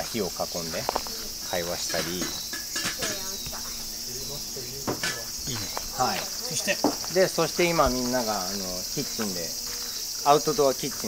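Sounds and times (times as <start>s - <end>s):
faint voices: 0.0s - 11.0s
high-pitched insect chorus: 0.0s - 11.0s.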